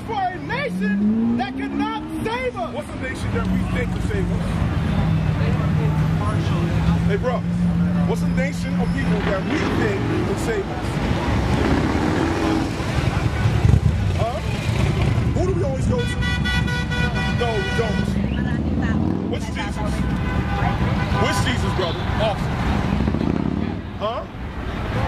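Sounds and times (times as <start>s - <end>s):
traffic low rumble: 0.0s - 25.0s
voices: 0.0s - 25.0s
vehicle horn: 15.9s - 18.4s, 19.5s - 22.5s.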